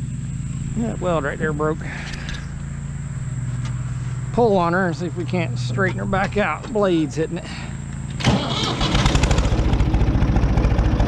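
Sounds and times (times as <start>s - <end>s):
tractor engine idling: 0.0s - 11.0s.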